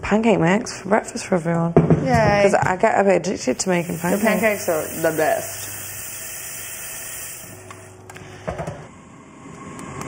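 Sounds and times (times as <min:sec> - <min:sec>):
steady hiss: 0:03.4 - 0:08.0.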